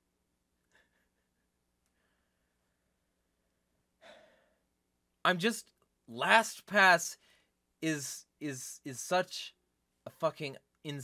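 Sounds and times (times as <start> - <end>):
man breathing: 1.9 - 4.8.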